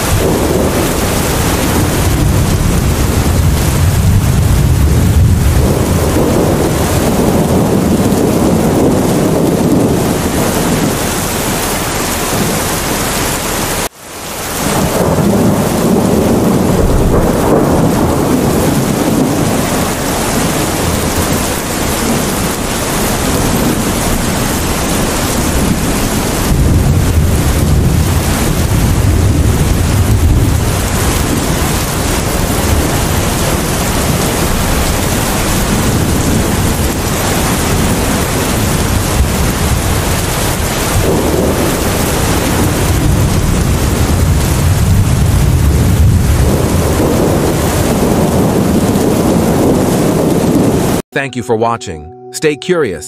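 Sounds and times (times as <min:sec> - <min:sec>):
rolling thunder: 0:00.0 - 0:11.3, 0:14.6 - 0:51.0
heavy rain: 0:00.0 - 0:51.1.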